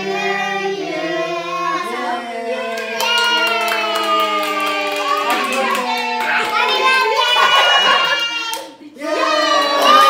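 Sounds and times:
lively song with singing: 0.0s - 10.0s
hands clapping: 2.7s - 8.8s.

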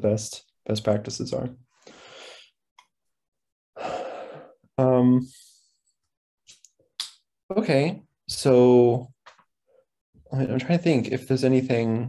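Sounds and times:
man speaking: 10.3s - 12.0s.

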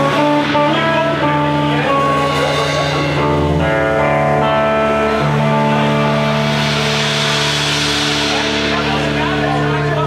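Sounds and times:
drum cymbals: 0.0s - 10.0s
electric guitar sustained chord: 0.0s - 10.0s.

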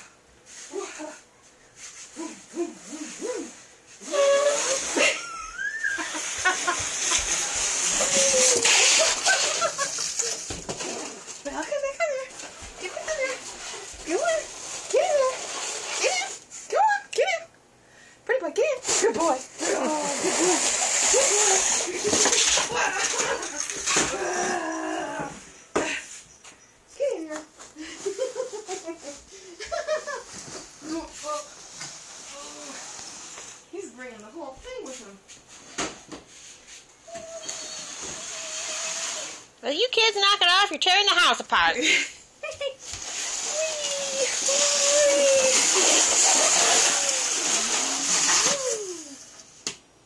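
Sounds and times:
cardboard box scraping on floor: 3.9s - 5.2s, 6.0s - 11.3s, 12.4s - 16.4s, 18.9s - 24.1s, 30.3s - 33.7s, 37.5s - 39.5s, 42.8s - 48.8s
people giggling and laughing: 27.8s - 30.4s.

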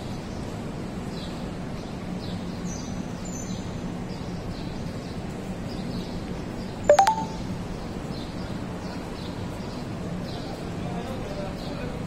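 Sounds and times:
street background noise: 0.0s - 12.0s
rising electronic beeps: 6.9s - 7.4s.

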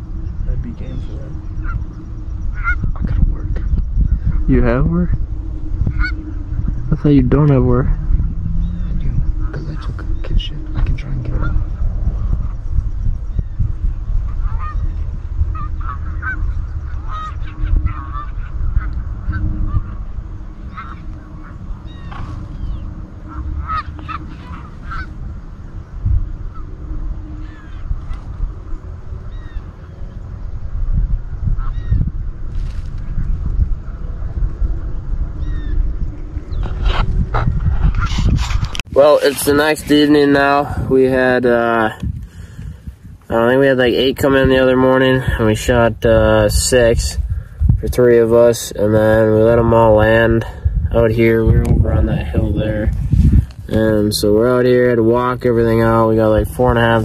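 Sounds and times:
geese honking: 0.0s - 38.1s
steady low rumble: 0.0s - 57.0s.

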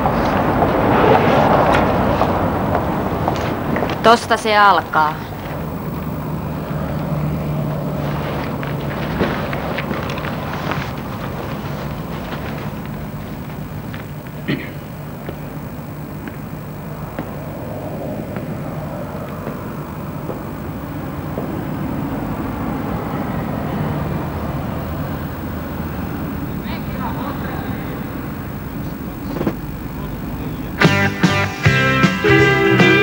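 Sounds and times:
vehicle passing rumble: 0.0s - 32.0s
steady low hum: 0.0s - 33.0s.

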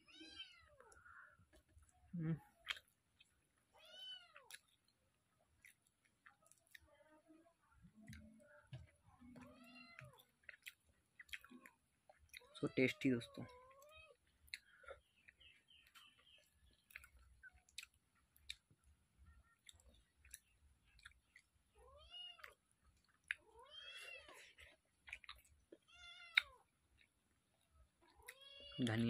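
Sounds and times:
cat meowing: 3.8s - 4.6s, 21.8s - 22.6s, 23.5s - 24.4s, 28.2s - 28.9s.

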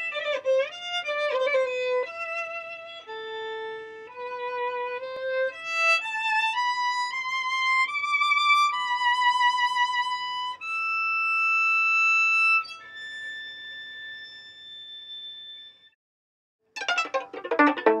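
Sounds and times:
quick run of short notes: 16.8s - 18.0s
violin playing long held notes: 16.8s - 18.0s.

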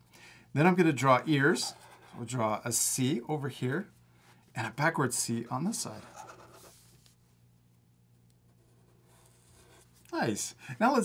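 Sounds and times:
faint low hum: 0.2s - 11.0s.

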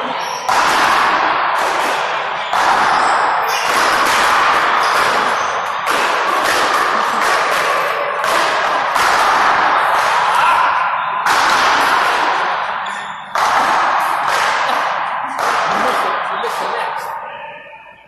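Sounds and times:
paddles hitting rubber ball: 0.2s - 16.6s.

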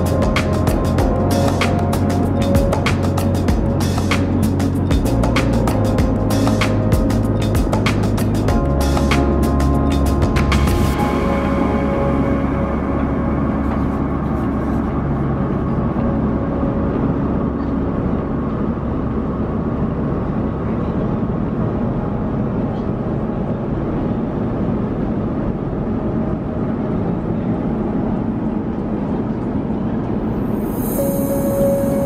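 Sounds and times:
airplane cabin roar: 0.0s - 32.0s
faint low hum: 0.0s - 32.0s.

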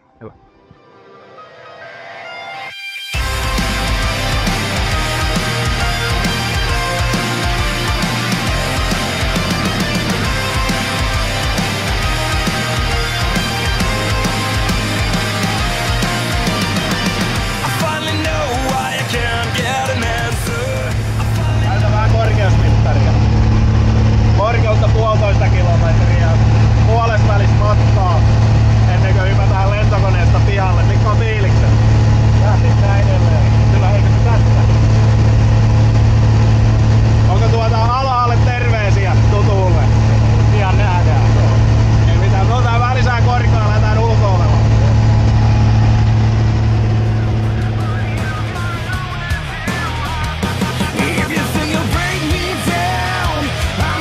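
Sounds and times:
propeller plane engine droning: 3.2s - 54.0s
voices: 3.5s - 23.4s, 24.3s - 34.8s, 37.2s - 45.6s, 46.7s - 54.0s.

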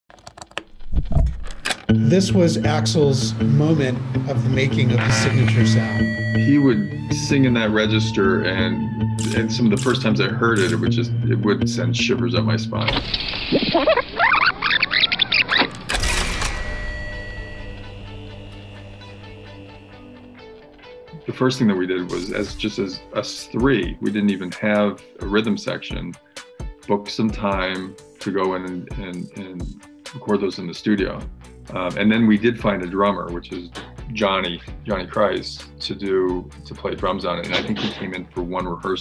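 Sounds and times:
tape rewind sound effect: 3.7s - 6.8s, 12.8s - 18.5s, 22.0s - 22.8s
musical hit title sting: 15.9s - 20.6s.

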